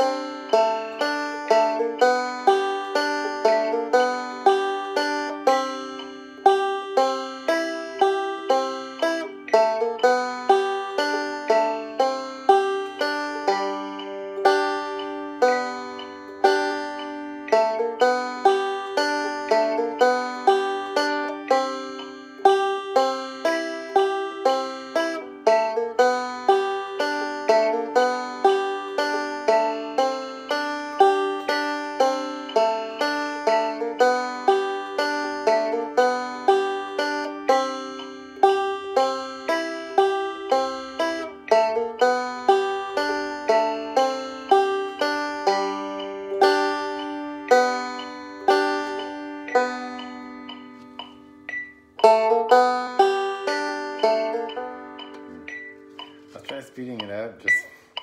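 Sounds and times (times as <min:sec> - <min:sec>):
banjo plucked notes: 0:00.0 - 0:58.0.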